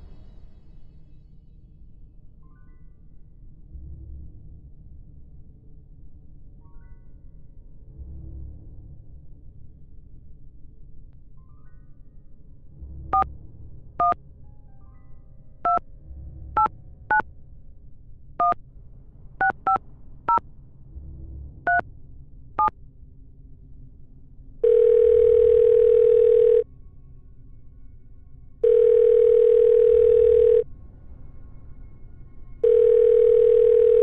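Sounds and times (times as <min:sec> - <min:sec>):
phone line ringing: 0:24.6 - 0:26.6, 0:28.6 - 0:30.6, 0:32.6 - 0:34.0
telephone keypad tones: 0:24.6 - 0:26.6, 0:28.6 - 0:30.6, 0:32.6 - 0:34.0.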